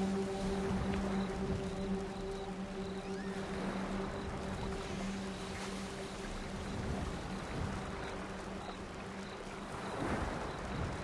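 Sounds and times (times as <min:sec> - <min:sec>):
running water hiss: 0:00.0 - 0:11.0.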